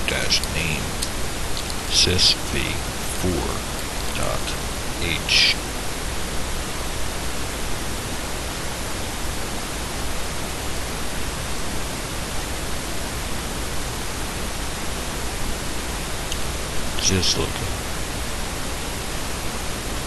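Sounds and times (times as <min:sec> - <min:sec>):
faint low hum: 0:00.0 - 0:20.0
microphone hiss: 0:00.0 - 0:20.0.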